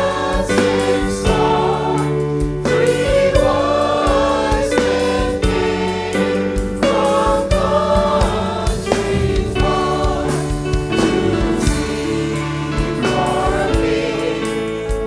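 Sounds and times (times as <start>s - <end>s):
women's choir singing in harmony: 0.0s - 15.0s.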